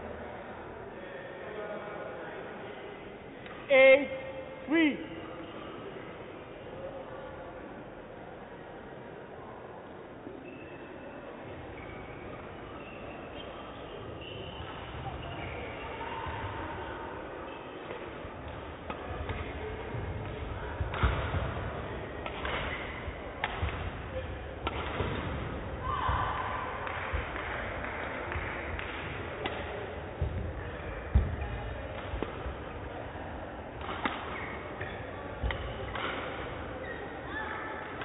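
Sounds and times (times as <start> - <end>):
rackets striking shuttlecock: 17.8 - 21.6, 22.2 - 25.6, 26.8 - 30.5, 31.1 - 32.6, 33.7 - 36.6
shoes squeaking on court: 34.2 - 36.1, 36.7 - 37.4.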